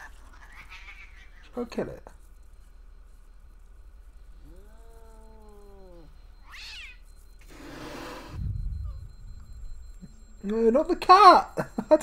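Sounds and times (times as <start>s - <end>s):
cat yowling: 0.2s - 1.6s, 4.4s - 7.1s
hissing noise: 7.4s - 10.5s
low thump: 8.4s - 10.3s.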